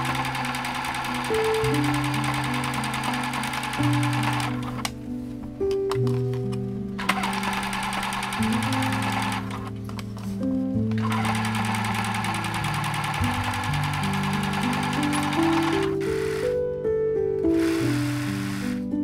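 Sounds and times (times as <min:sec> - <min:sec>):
sewing machine stitching: 0:00.0 - 0:04.9, 0:07.0 - 0:09.7, 0:11.0 - 0:16.5
background music: 0:00.0 - 0:19.0.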